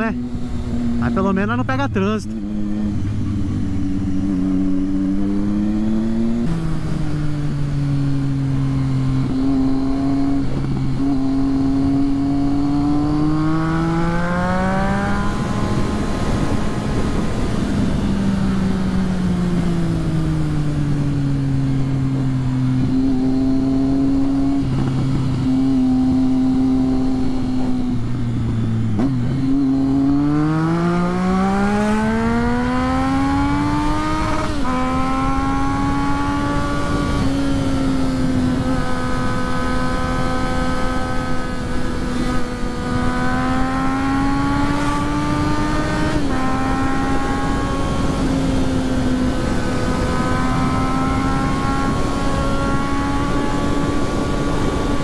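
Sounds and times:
motorcycle engine accelerating: 0.0s - 55.0s
wind rush on microphone: 2.4s - 55.0s.

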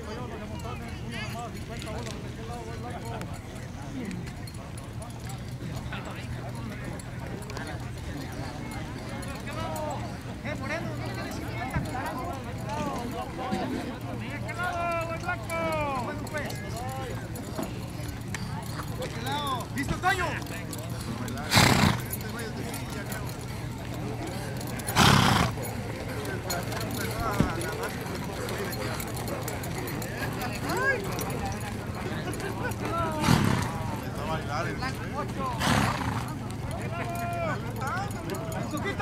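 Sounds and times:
distant people talking: 0.0s - 39.0s
hooves clip-clopping on dirt: 0.1s - 39.0s
horse snorting: 21.0s - 22.2s, 24.8s - 25.6s, 33.2s - 33.8s, 35.6s - 36.4s.

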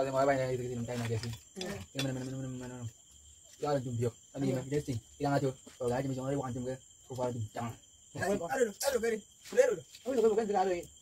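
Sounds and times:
crickets chirring: 0.0s - 11.0s
person talking: 3.6s - 10.9s.

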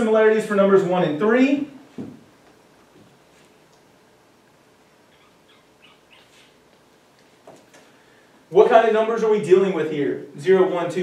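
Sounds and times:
marker squeaking on whiteboard: 5.1s - 6.6s.

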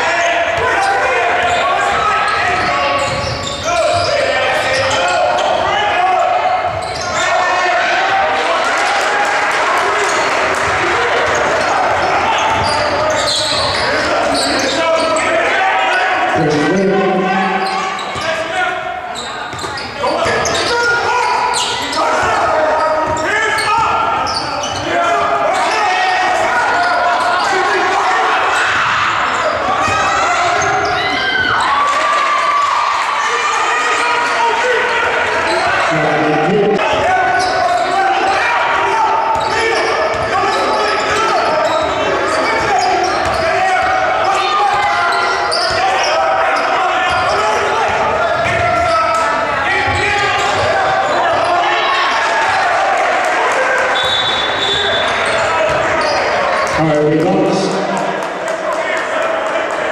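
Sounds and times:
shouting and chatter: 0.0s - 59.9s
sneaker squeak: 0.7s - 7.4s, 11.3s - 31.8s, 35.4s - 38.4s, 39.3s - 49.2s, 53.9s - 56.8s.

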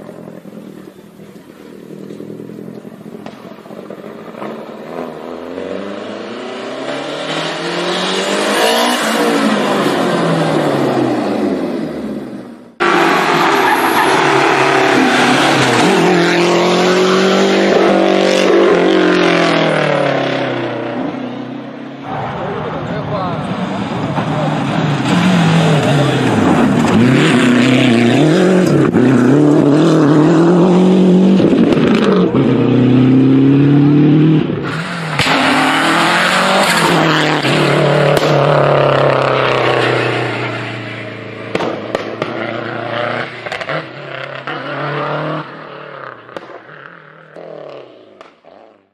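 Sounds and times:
rally car engine revving: 0.0s - 48.9s.

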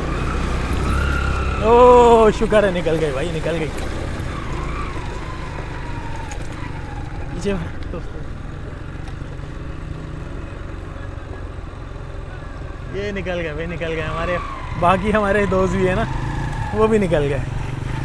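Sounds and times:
motorcycle engine idling: 1.5s - 13.6s.

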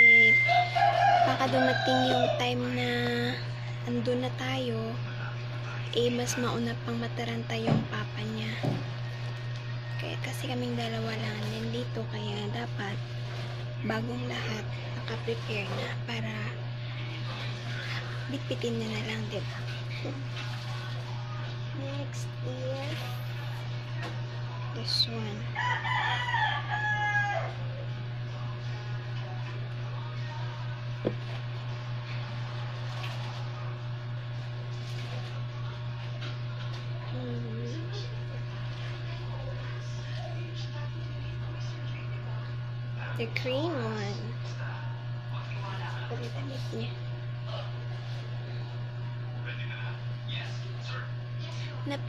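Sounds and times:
low electrical hum: 0.0s - 52.0s
rooster crowing: 0.3s - 2.8s, 25.5s - 27.8s.

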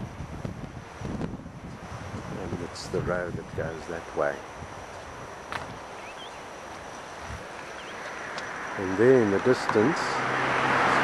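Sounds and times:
wind: 0.0s - 11.0s
high bird chirps: 5.9s - 7.0s, 7.6s - 8.4s.

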